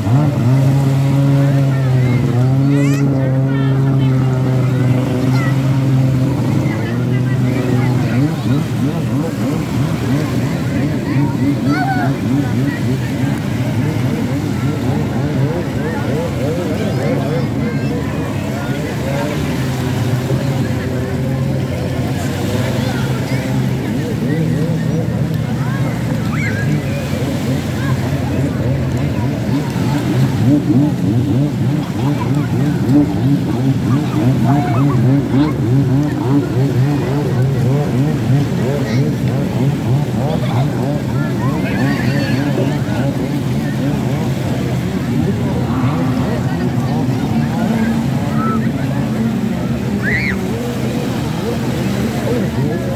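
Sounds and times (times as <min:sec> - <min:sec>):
crowd talking and calling out: 0:00.0 - 0:52.9
jet ski engine running: 0:00.0 - 0:52.9
small waves washing ashore: 0:00.0 - 0:52.9.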